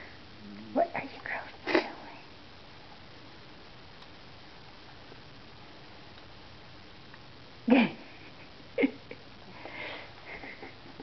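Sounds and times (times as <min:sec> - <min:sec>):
woman laughing: 0:07.7 - 0:09.3, 0:10.2 - 0:11.0.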